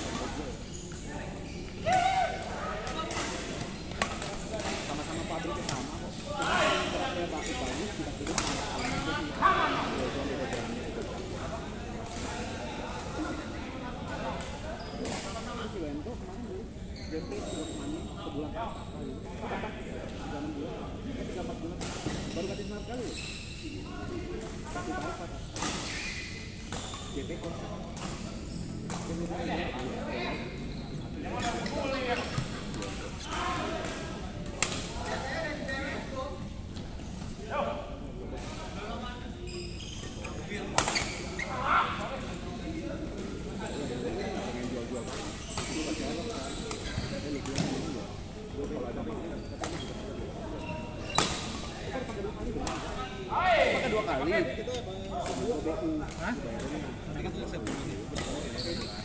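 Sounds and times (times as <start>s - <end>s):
murmur of voices echoing: 0.0s - 59.0s.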